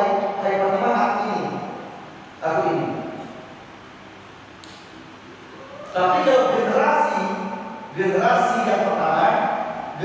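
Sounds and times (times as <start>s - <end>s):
man talking over microphone: 0.0s - 1.8s, 2.4s - 3.3s, 6.0s - 10.0s.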